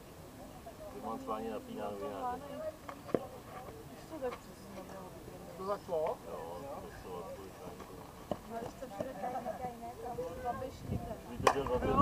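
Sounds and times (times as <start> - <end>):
players' voices: 0.2 - 12.0.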